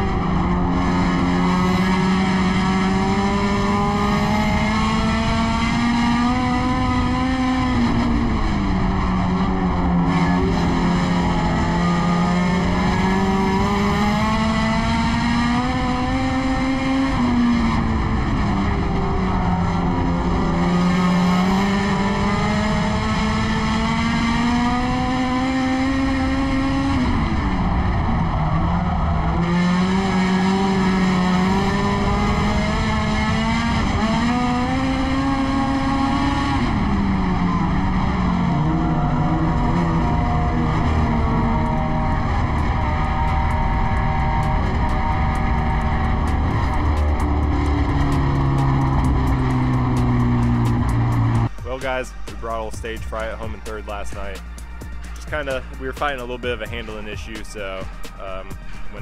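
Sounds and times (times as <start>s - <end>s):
racing car engine revving: 0.0s - 59.0s.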